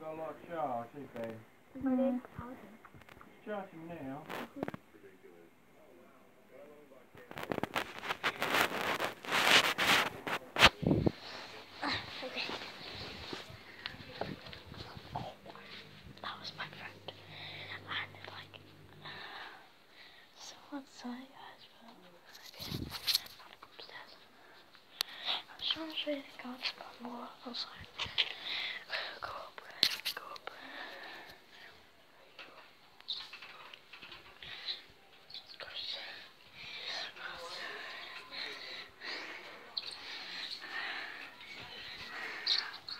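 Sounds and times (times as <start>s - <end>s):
steady low hum: 0.0s - 31.7s
person whispering: 10.0s - 19.2s, 20.4s - 31.7s, 34.4s - 42.9s.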